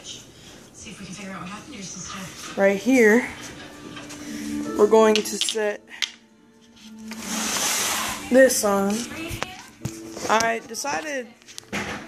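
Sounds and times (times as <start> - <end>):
low background music: 2.6 - 12.0.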